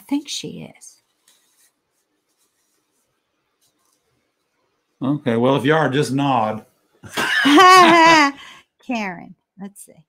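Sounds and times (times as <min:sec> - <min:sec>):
faint rustle: 0:00.9 - 0:04.7.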